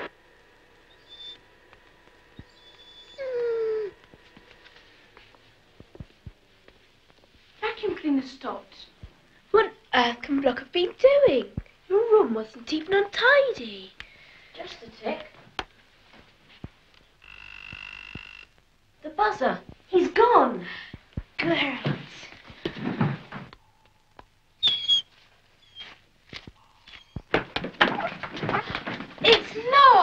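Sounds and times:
dog whining: 0:00.9 - 0:01.5, 0:02.4 - 0:04.1, 0:24.6 - 0:26.0, 0:26.6 - 0:28.8
person talking: 0:07.6 - 0:08.9, 0:09.5 - 0:14.0, 0:14.6 - 0:15.4, 0:19.0 - 0:22.4, 0:28.6 - 0:30.0
electric buzzer: 0:17.2 - 0:18.6.

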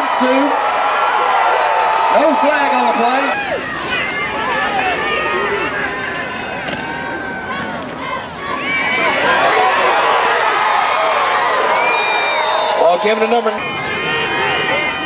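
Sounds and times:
crowd talking and shouting: 0:00.0 - 0:15.0.

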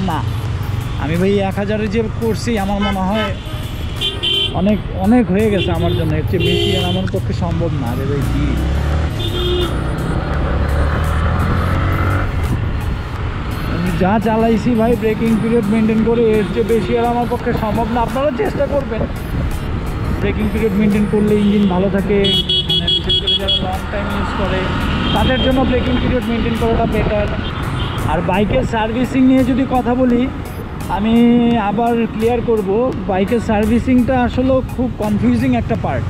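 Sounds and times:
motorcycle running: 0:00.0 - 0:36.0
man talking: 0:01.0 - 0:03.4, 0:04.5 - 0:08.7, 0:13.7 - 0:19.2, 0:20.2 - 0:36.0.

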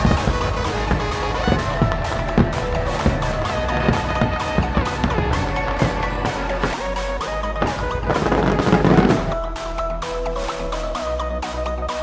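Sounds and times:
firework crackling and bangs: 0:00.0 - 0:09.4
electronic dance music: 0:00.0 - 0:12.0.

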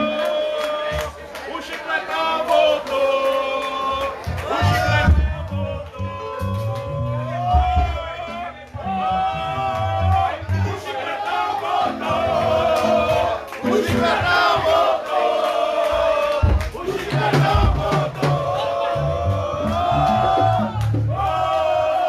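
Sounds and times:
crowd singing in unison: 0:00.0 - 0:22.0
live band bass and drums: 0:04.2 - 0:10.8, 0:16.4 - 0:21.5.

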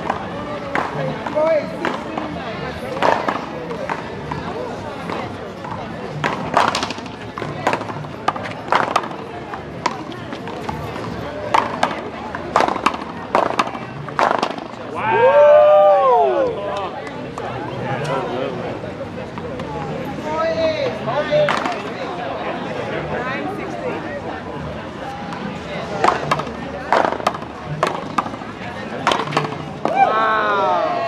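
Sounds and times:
paddles striking rubber ball: 0:26.0 - 0:28.4, 0:29.0 - 0:30.0.

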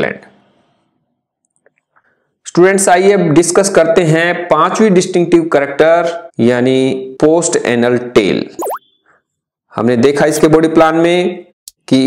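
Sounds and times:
synthetic plop sound effect: 0:08.6 - 0:08.8.

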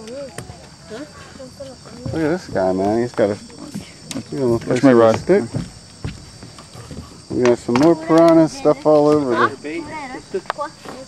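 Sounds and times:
insects chirring: 0:00.0 - 0:11.0.

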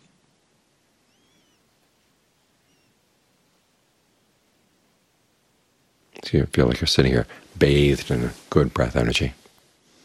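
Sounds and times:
faint bird chirps: 0:00.6 - 0:04.5.

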